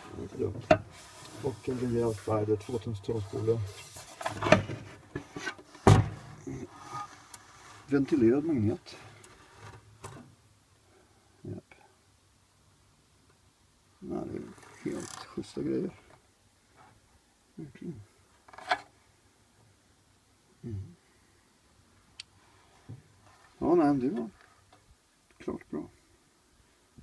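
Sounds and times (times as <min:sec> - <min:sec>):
man mumbling: 0:20.6 - 0:21.0.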